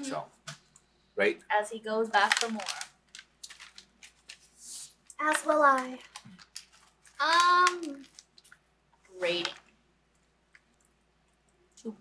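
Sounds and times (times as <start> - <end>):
plastic snack bag crinkling: 2.1 - 9.8
crackers being chewed: 2.4 - 8.7, 9.4 - 11.9.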